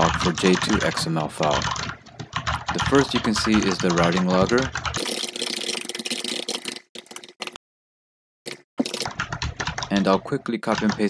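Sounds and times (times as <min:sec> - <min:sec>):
computer keyboard typing: 0:00.0 - 0:07.6, 0:08.5 - 0:11.0.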